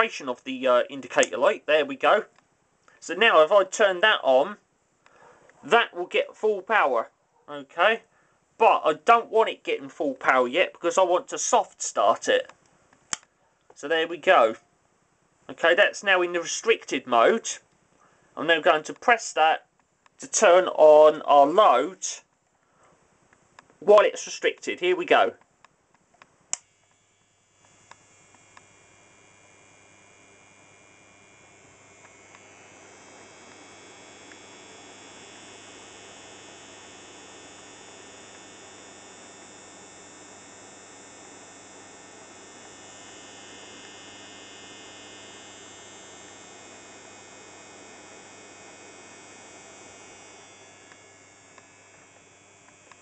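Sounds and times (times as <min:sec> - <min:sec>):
low electrical hum: 0:00.0 - 0:53.0
fan spinning up: 0:26.5 - 0:53.0.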